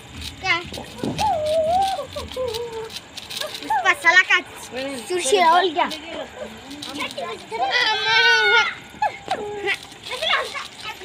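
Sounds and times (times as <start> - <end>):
child's high-pitched cry: 0.9 - 4.1, 7.6 - 9.8.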